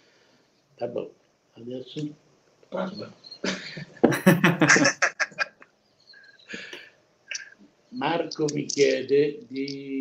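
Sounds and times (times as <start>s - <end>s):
man laughing: 3.4s - 5.7s.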